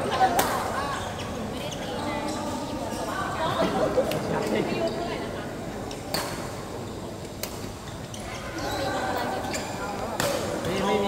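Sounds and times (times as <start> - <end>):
people chatting in a large hall: 0.0 - 11.0
badminton rackets striking shuttlecocks: 0.3 - 0.7, 10.0 - 10.8.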